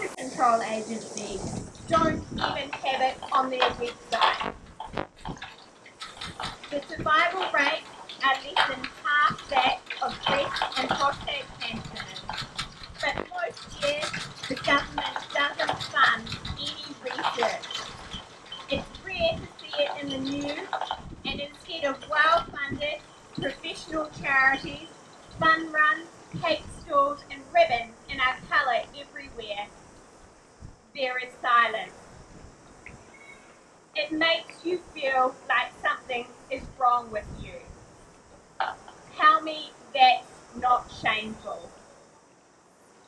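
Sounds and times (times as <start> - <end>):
woman speaking into a microphone: 0.0 - 4.5, 6.7 - 12.2, 13.0 - 17.6, 18.7 - 29.7, 31.0 - 31.9, 34.0 - 37.6, 38.6 - 41.7
faint outdoor background noise: 0.0 - 43.0.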